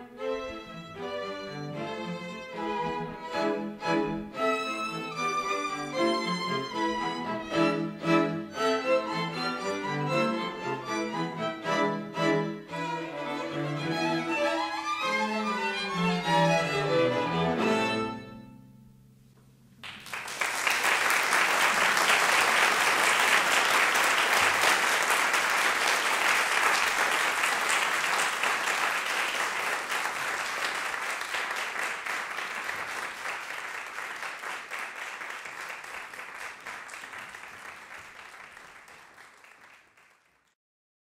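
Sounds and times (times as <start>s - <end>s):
audience applauding: 19.8s - 40.6s.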